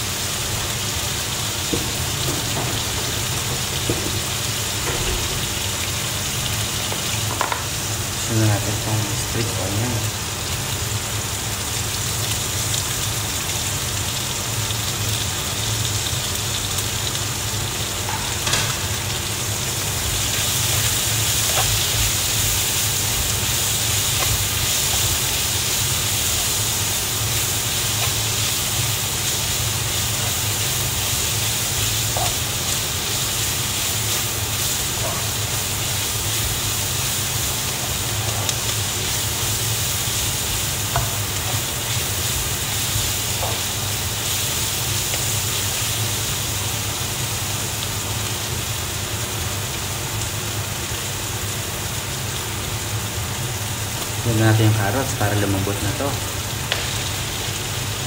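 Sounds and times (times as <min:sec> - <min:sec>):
food sizzling in a wok: 0:00.0 - 0:58.0.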